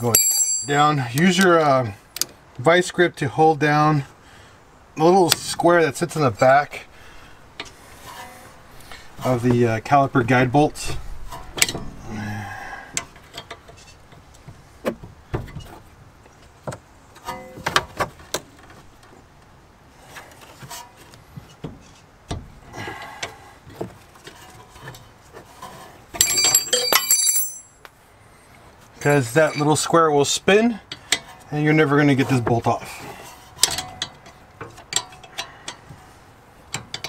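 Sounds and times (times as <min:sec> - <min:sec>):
rapid metallic clicking and ringing: 0:00.0 - 0:00.9, 0:26.2 - 0:27.8.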